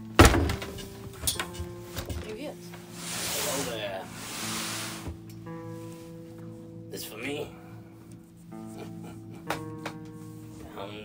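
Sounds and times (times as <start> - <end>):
breathy hiss: 2.8 - 6.2.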